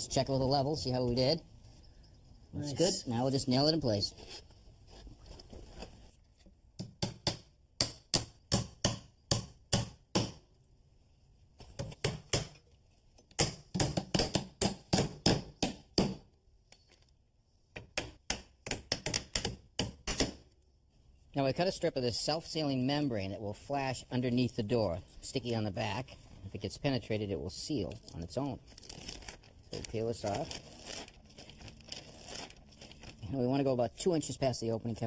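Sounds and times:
hammer driving nails into wood: 6.8 - 10.4, 11.8 - 12.7, 13.3 - 16.3, 17.7 - 20.4.

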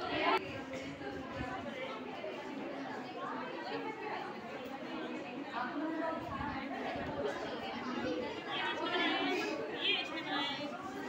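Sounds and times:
people chattering in a hall: 0.0 - 11.0.

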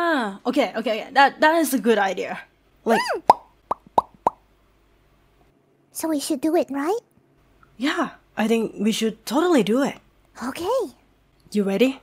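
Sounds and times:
mouth pops: 3.0 - 4.4.

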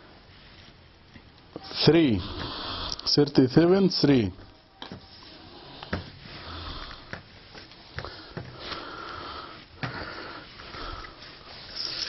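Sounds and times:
fabric and plastic rustling: 0.0 - 1.9, 4.3 - 8.9, 9.5 - 12.0.

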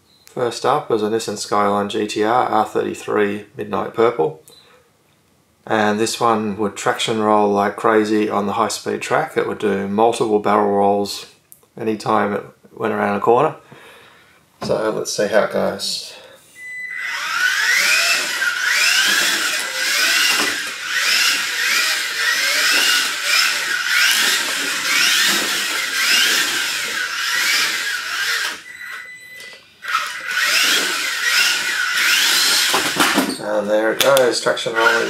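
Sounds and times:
toy car electric motor whining: 16.9 - 33.3, 34.7 - 35.0.

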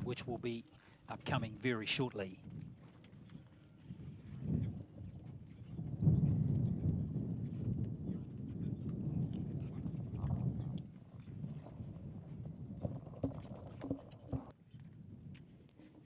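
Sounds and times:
wind buffeting microphone: 0.0 - 15.7.

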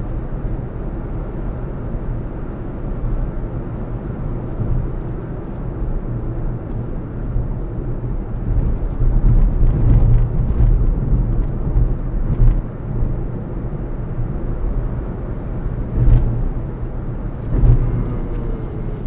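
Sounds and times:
car driving rumble from inside: 0.0 - 19.0
truck passing: 17.2 - 19.0.

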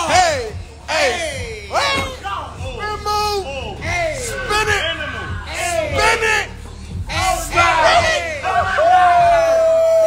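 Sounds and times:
men shouting and whooping: 0.0 - 10.0
long drawn-out yell: 7.2 - 10.0.

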